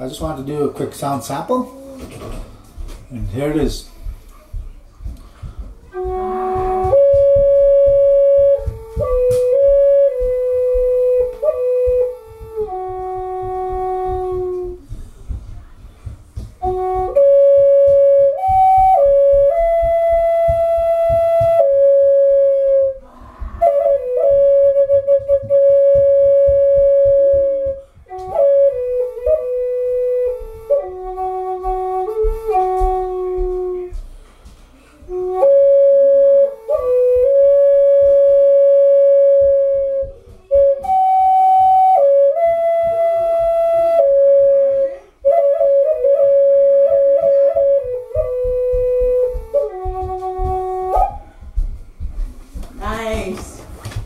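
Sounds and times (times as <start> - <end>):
flute playing slow melody: 5.5 - 14.9, 16.6 - 34.0, 34.9 - 51.4.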